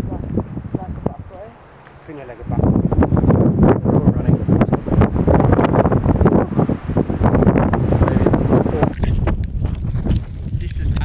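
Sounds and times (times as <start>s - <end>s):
storm wind buffeting microphone: 0.0s - 11.0s.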